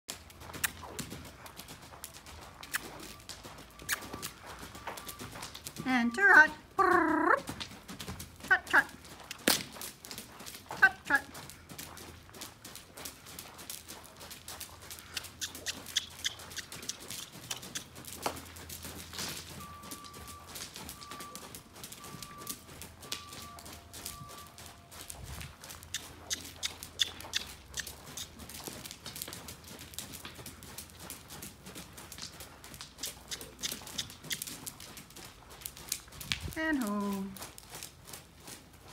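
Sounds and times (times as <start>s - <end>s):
horse hooves on soft footing: 0.1s - 38.9s.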